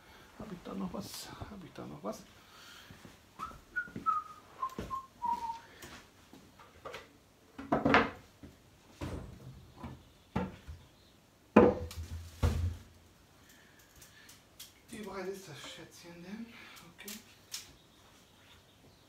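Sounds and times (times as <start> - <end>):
man whistling a tune: 3.4 - 5.7
knocks and thumps of handling: 6.8 - 10.8, 11.6 - 12.9.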